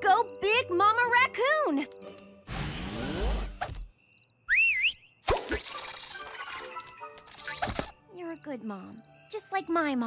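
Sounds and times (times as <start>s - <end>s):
busy cartoon music: 4.6s - 10.0s.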